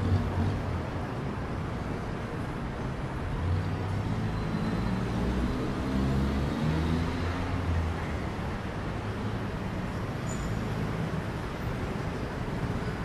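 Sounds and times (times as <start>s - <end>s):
busy road traffic: 0.0s - 13.0s
passing vehicle engines hum: 0.0s - 13.0s.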